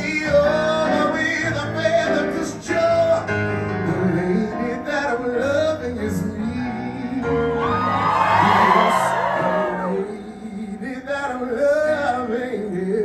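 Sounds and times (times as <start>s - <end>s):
instrumental backing music: 0.0s - 13.0s
person singing through microphone: 0.0s - 13.0s.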